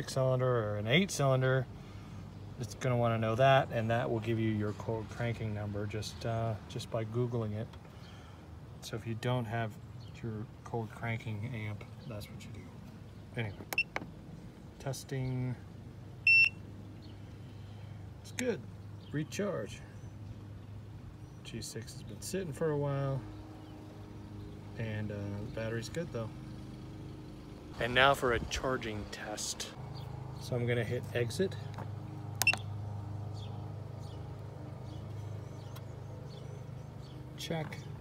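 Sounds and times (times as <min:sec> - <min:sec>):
battery tester beep: 0:16.2 - 0:16.6, 0:32.4 - 0:32.6.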